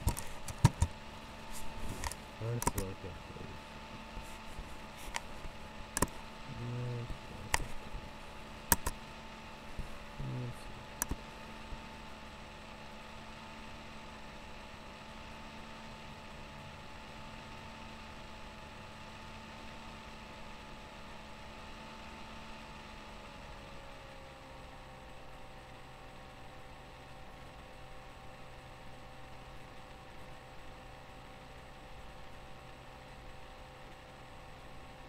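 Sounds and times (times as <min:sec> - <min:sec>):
room tone hum and hiss: 0:00.0 - 0:35.0.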